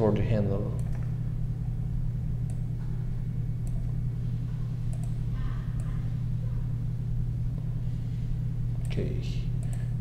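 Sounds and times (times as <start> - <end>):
low background hum: 0.0 - 10.0
computer mouse clicks: 3.6 - 4.0, 4.9 - 5.2, 5.8 - 6.0, 9.6 - 10.0.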